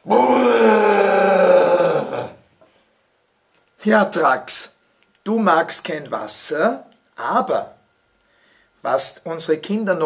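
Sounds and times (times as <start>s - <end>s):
person groaning: 0.0s - 2.4s.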